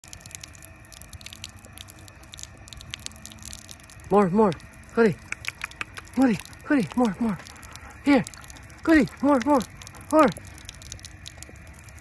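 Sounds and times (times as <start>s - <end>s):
drinking water clicks and slurps: 0.0s - 12.0s.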